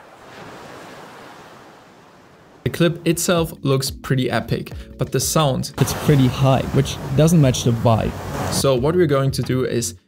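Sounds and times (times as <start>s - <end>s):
rushing surf and wind: 0.0s - 2.7s, 5.8s - 8.8s.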